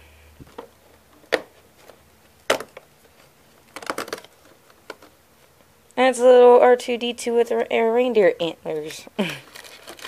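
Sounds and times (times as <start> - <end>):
cardboard crackling: 9.4 - 10.0.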